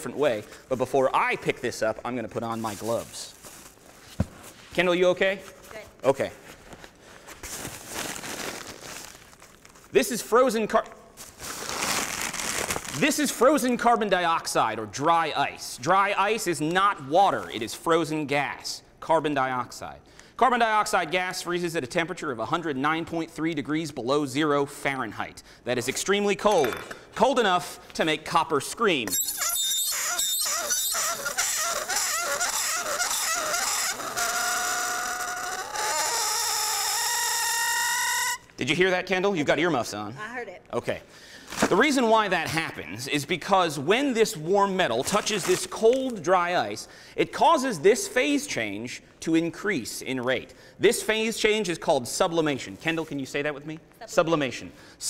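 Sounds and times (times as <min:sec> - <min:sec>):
paper wrapping crinkling: 0:02.5 - 0:04.7, 0:06.4 - 0:09.9, 0:11.2 - 0:13.1
metal squealing on dry ice: 0:29.1 - 0:38.6.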